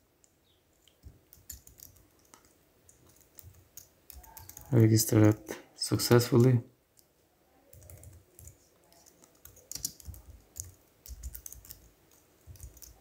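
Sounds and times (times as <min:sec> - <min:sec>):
typing on computer keyboard: 0:00.9 - 0:05.5, 0:07.7 - 0:13.0.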